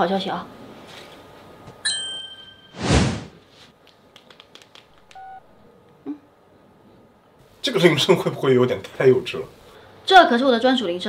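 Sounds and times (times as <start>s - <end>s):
short whoosh: 2.8s - 3.4s
keypad beep: 5.1s - 5.5s.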